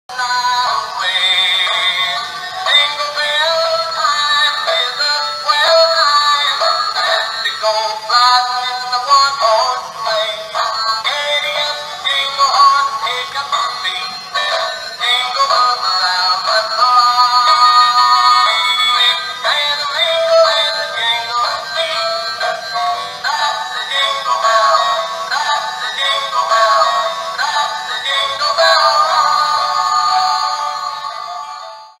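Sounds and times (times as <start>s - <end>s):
tinny toy song with singing: 0.1s - 32.0s.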